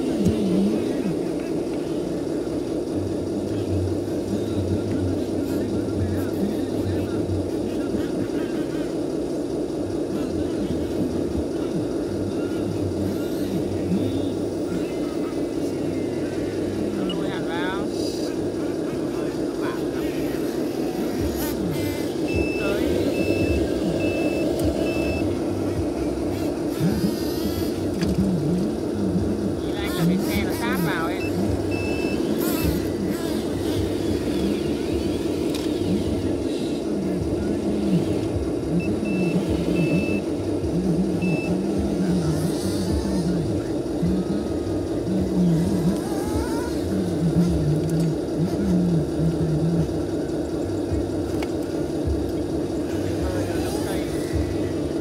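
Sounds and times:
toy excavator motor drone: 0:00.0 - 0:55.0
voices talking: 0:00.0 - 0:55.0
electronic reversing beeps: 0:15.0 - 0:17.5, 0:21.5 - 0:27.9, 0:30.4 - 0:32.9, 0:38.7 - 0:40.3, 0:41.1 - 0:41.8.

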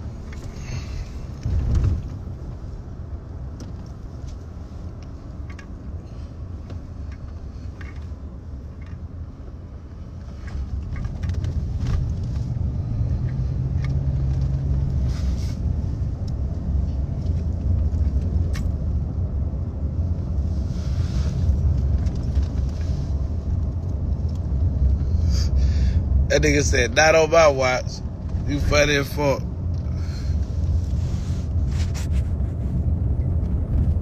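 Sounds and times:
car rumble inside cabin: 0:00.0 - 0:34.0.

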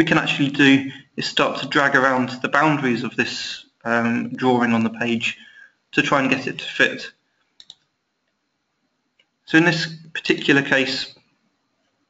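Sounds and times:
computer mouse clicks: 0:07.5 - 0:07.9.

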